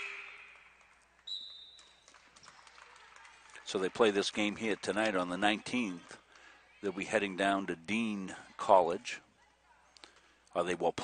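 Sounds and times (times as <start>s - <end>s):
referee's whistle blast: 0.0s - 0.6s.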